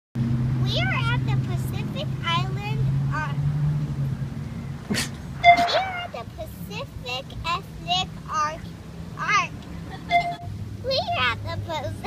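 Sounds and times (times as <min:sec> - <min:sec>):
young child speaking: 0:00.6 - 0:03.4, 0:05.6 - 0:10.2, 0:10.8 - 0:12.0.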